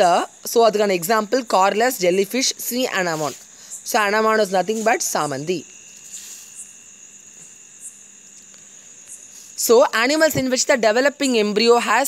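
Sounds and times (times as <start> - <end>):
faint hiss: 0.0 - 12.0
high-pitched whine: 0.0 - 12.0.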